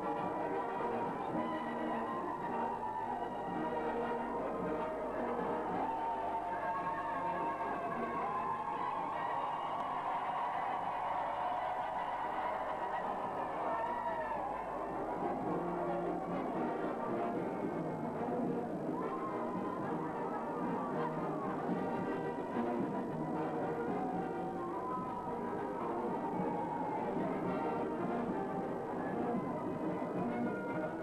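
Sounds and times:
brass band music: 0.0 - 31.0.

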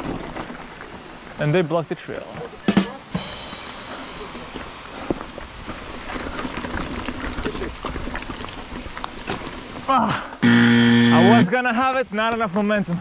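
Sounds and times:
bike rattling over bumps: 0.0 - 1.3, 5.2 - 9.8
bike tyres on trail: 0.0 - 2.6, 3.9 - 13.0.

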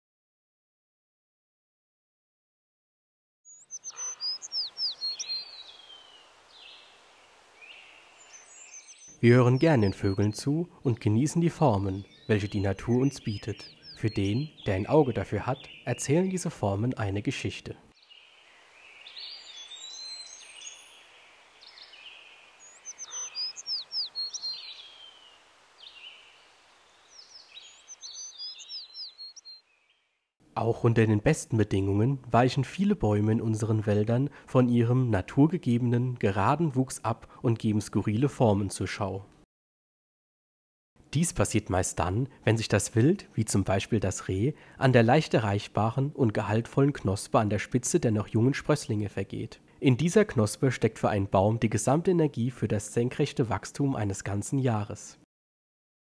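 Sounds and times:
songbirds singing: 3.4 - 30.3
faint outdoor hiss: 3.5 - 39.4, 41.0 - 55.2.

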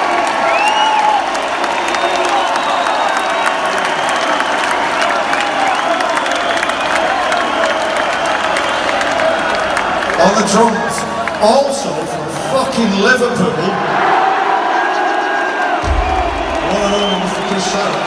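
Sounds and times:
crowd shouts: 0.0 - 11.6, 13.5 - 18.0
crowd applauding and cheering: 0.0 - 18.0
whistles: 0.4 - 9.3, 16.0 - 18.0.

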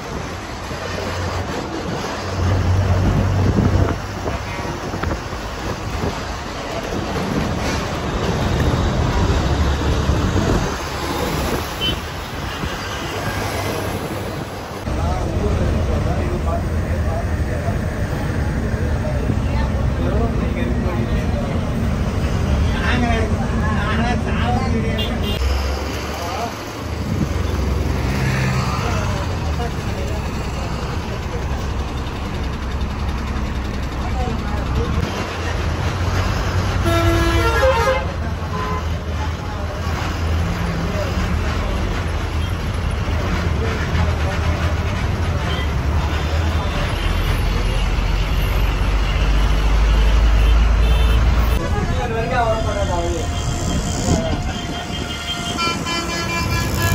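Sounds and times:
bus engine rumbling: 0.0 - 56.9
road roar: 0.0 - 56.9
horn toot: 53.2 - 56.9.

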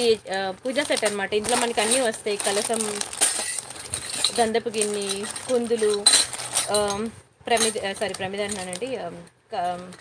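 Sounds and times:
plastic wrapping rustling: 0.0 - 10.0
metal vessels clinking: 0.3 - 9.0.

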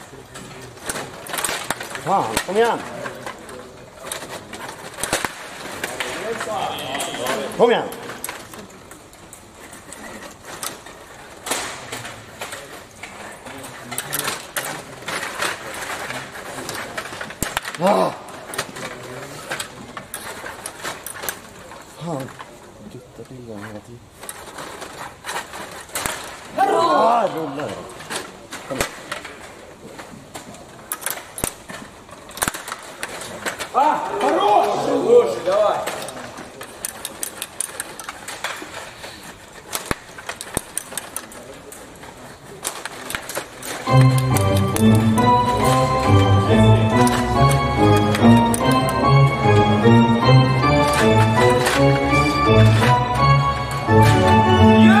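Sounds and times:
table hockey clicks and clacks: 0.0 - 22.7, 23.6 - 26.6, 27.6 - 34.8, 35.5 - 55.0.

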